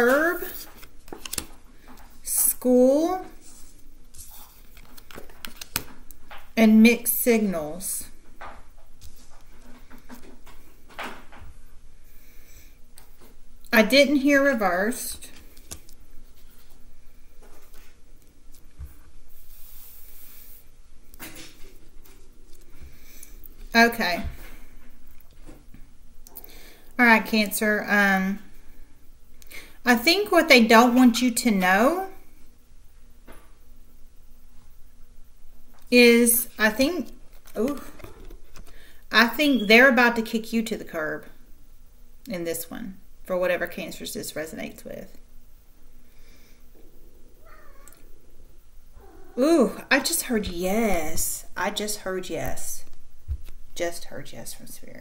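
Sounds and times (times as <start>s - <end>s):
people talking: 0.0s - 0.6s, 2.3s - 3.4s, 6.6s - 8.1s, 13.7s - 15.3s, 23.7s - 24.4s, 27.0s - 28.4s, 29.9s - 32.2s, 35.9s - 38.0s, 39.1s - 41.4s, 42.3s - 45.2s, 49.4s - 52.9s, 53.8s - 55.0s
cards rustling on wooden table: 0.0s - 2.2s, 3.4s - 6.5s, 15.2s - 16.8s
cat meowing: 47.4s - 48.1s, 49.0s - 49.4s.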